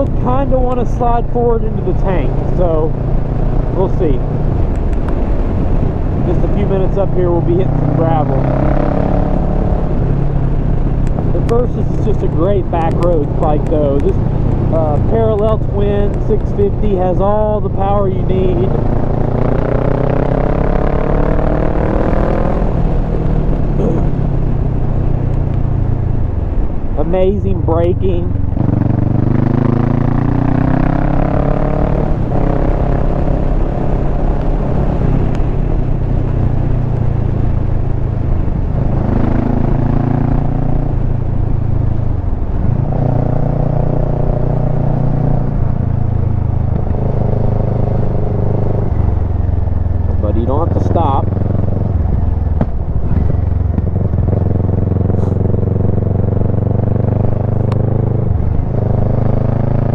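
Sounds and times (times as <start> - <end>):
motorcycle engine accelerating: 0.0 - 59.9.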